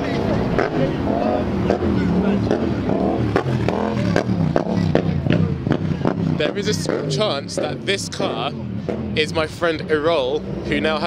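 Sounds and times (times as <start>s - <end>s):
people talking: 0.0s - 3.1s, 3.7s - 8.6s, 9.2s - 11.0s
car engine running: 0.0s - 11.0s.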